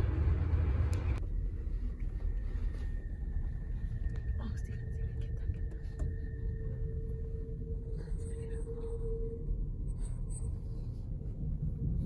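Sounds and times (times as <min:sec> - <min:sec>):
train rumbling: 0:00.0 - 0:12.0
faint high whine: 0:00.7 - 0:12.0.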